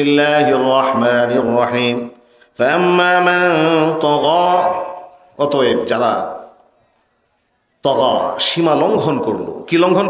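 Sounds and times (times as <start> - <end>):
man chanting into a microphone: 0.0 - 6.5.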